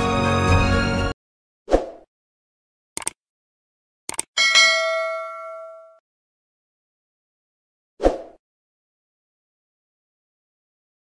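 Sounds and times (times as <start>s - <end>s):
short clicks: 3.0s - 3.2s, 4.1s - 4.3s
bright bell ding: 4.4s - 6.0s.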